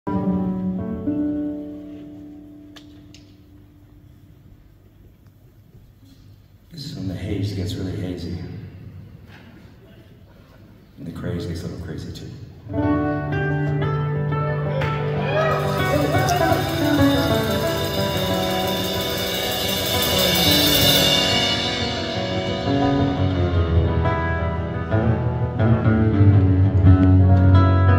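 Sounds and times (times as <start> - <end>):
rock band chord ringing: 14.8 - 25.6.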